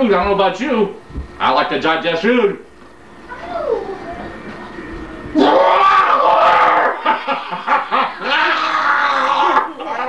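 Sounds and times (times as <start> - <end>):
man crying out: 5.4 - 7.1, 8.2 - 9.8.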